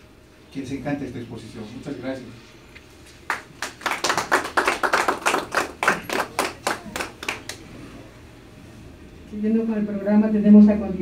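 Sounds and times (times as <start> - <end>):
small group applauding: 3.2 - 8.0.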